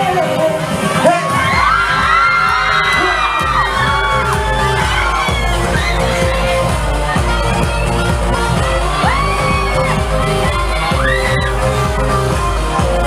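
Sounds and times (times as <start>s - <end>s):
live pop music: 0.0s - 13.0s
pulsing bass beat: 0.0s - 13.0s
audience cheering and screaming: 0.7s - 13.0s.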